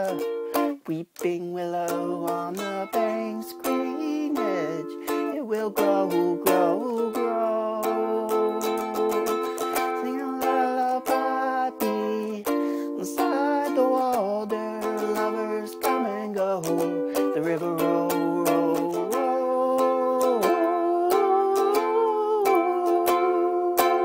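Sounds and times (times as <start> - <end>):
ukulele strumming chords: 0.0 - 24.0.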